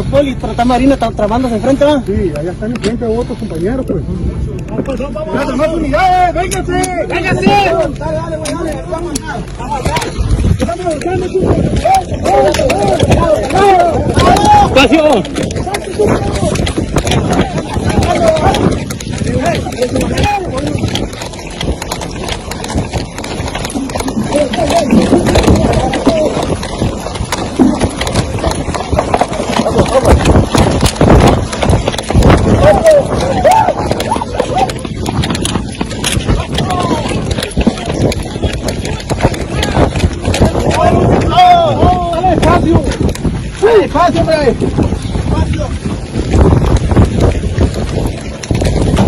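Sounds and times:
footsteps on dirt ground: 0.0 - 49.0
indistinct talking: 0.0 - 49.0.

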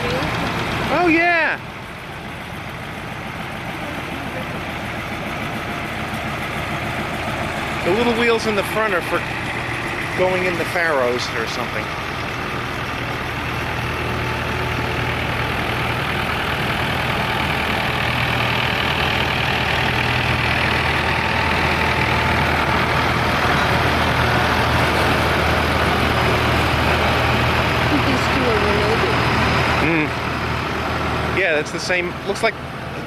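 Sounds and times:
tractors driving past: 0.0 - 33.0.

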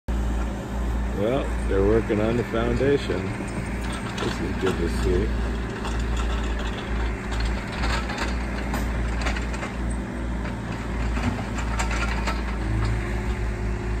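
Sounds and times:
diesel engine running: 0.1 - 14.0.

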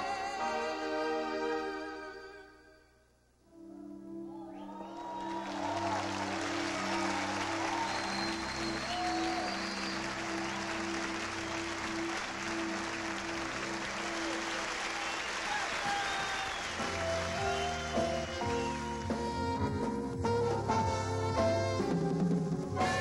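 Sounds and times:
music: 0.0 - 23.0
audience applause: 4.6 - 19.2.

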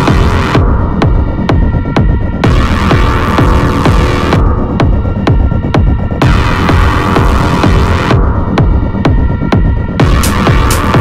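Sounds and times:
kick drum: 0.0 - 11.0
sustained synth tones: 0.0 - 11.0.

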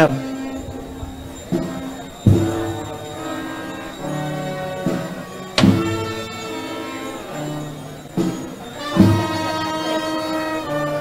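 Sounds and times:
drum and cymbal stroke: 1.3 - 10.6
brass band playing march: 1.5 - 11.0.

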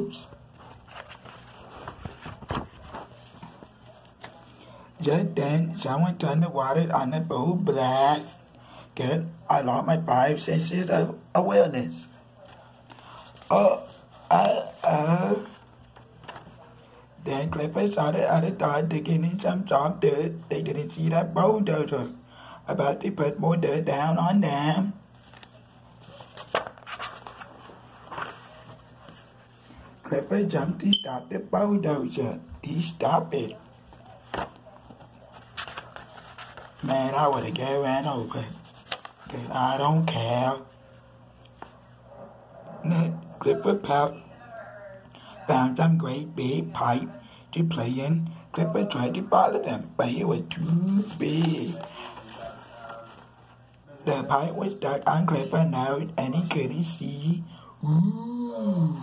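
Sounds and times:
book pages turning: 0.2 - 4.6, 12.4 - 16.8, 25.1 - 29.9, 33.7 - 39.5, 50.6 - 53.8.

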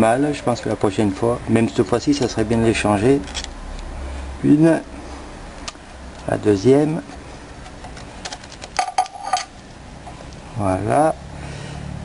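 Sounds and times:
metal clinking on hard surface: 8.8 - 9.5.

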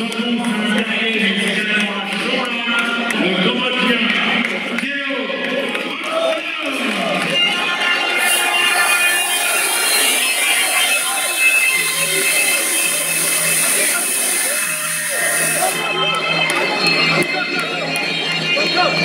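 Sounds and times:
entrance music over loudspeakers: 0.0 - 19.0
stage jets hissing: 8.0 - 15.9.

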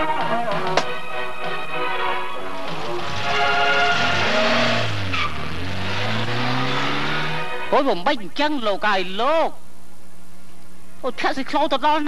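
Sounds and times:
car driving past: 2.5 - 7.7.

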